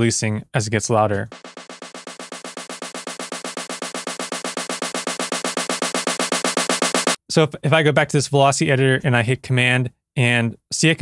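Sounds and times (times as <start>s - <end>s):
snare drum roll: 1.3s - 7.2s.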